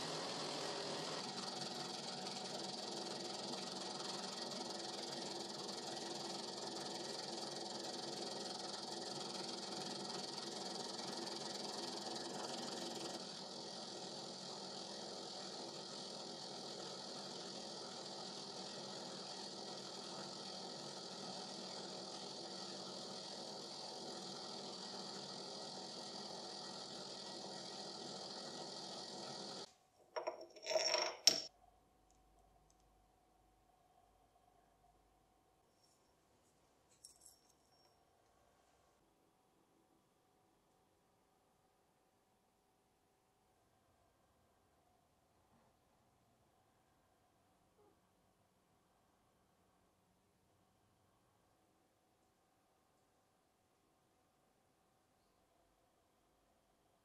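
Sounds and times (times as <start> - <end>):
lathe cutting metal hum: 0.0 - 29.7.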